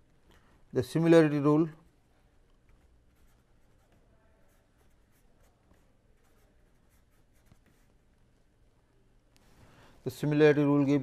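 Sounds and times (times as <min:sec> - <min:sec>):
pen scratching on paper: 0:02.7 - 0:08.0.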